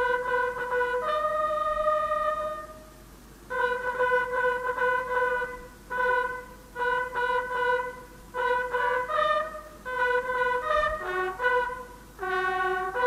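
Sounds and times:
brass instruments playing a tune: 0:00.0 - 0:02.9, 0:03.5 - 0:13.0.

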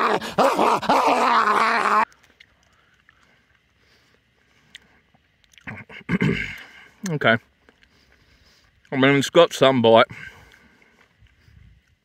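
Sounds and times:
man chewing jerky: 0:00.0 - 0:05.9, 0:06.5 - 0:08.9.

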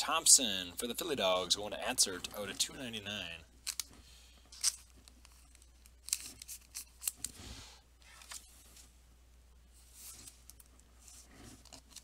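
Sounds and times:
plastic sleeve crinkling: 0:03.6 - 0:07.4
card sliding into sleeve: 0:06.1 - 0:08.8.

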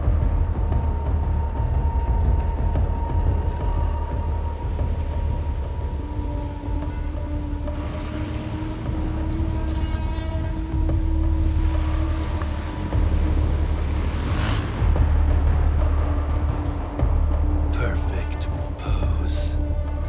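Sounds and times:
heavy rain falling: 0:04.0 - 0:20.0.

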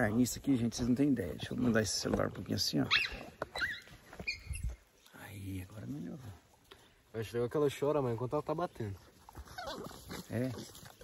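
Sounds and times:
young jaguar squeaky cries: 0:02.8 - 0:04.8, 0:09.5 - 0:10.0.

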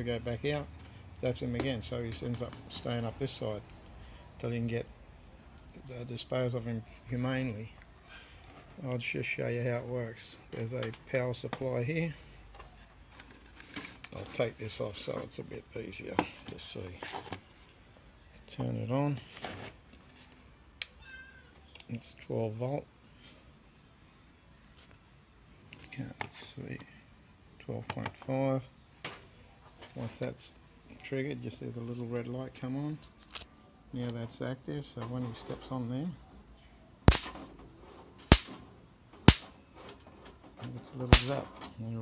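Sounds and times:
electric zapper sparking cracks: 0:37.0 - 0:37.5, 0:38.2 - 0:39.6, 0:41.1 - 0:41.4.

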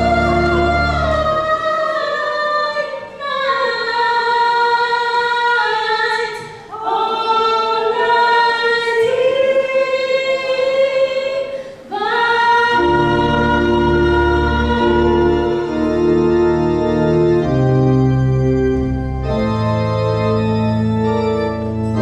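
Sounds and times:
keyboard accompaniment: 0:00.0 - 0:05.4, 0:12.4 - 0:22.0
women singing unaccompanied: 0:00.0 - 0:15.7.

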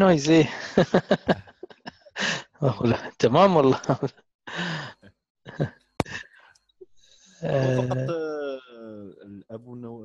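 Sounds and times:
man sighing: 0:07.4 - 0:09.0.

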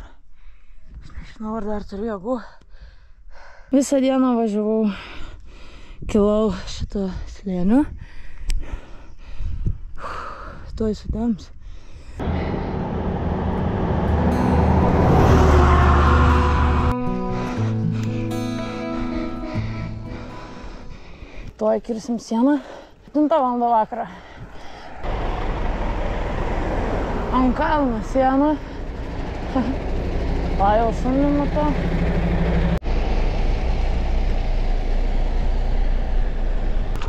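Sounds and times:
wind rumble on microphone: 0:06.0 - 0:11.6
person breathing heavily: 0:07.9 - 0:10.7, 0:11.6 - 0:12.8, 0:16.8 - 0:23.2, 0:24.0 - 0:25.1, 0:28.6 - 0:29.2
low truck rumble: 0:12.2 - 0:21.6, 0:23.0 - 0:37.0.

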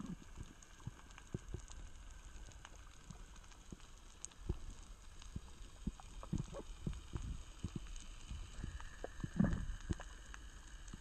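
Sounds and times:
low rumble of water: 0:00.0 - 0:11.0
underwater crackling clicks: 0:00.0 - 0:11.0.

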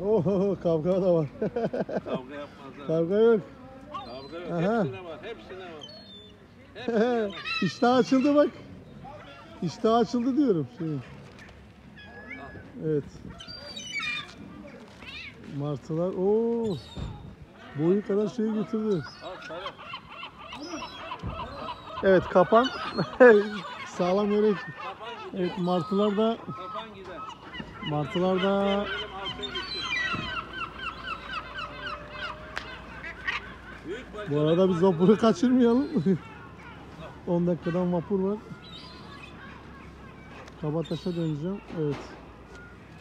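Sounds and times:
gulls calling: 0:00.0 - 0:43.0.

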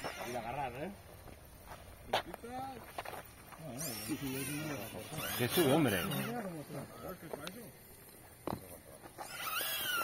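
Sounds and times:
people talking and laughing: 0:00.0 - 0:09.6.

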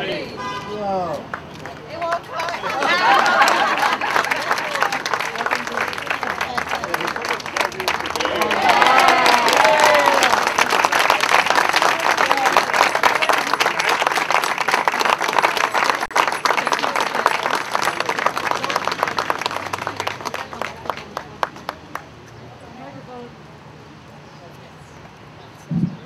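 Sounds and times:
crowd applauding: 0:01.3 - 0:22.1
people cheering: 0:02.0 - 0:20.6.

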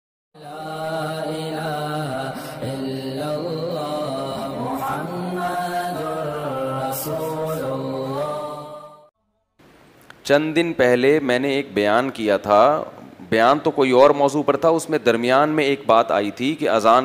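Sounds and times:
man chanting: 0:00.4 - 0:08.9.

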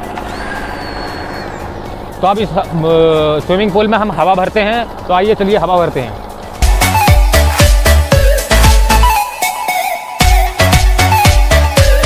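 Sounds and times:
generator engine running: 0:00.0 - 0:09.2.

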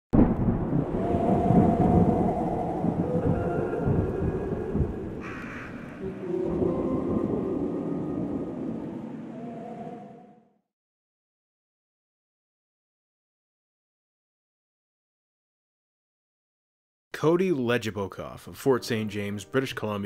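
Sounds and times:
thunder rumbling: 0:00.1 - 0:10.3.

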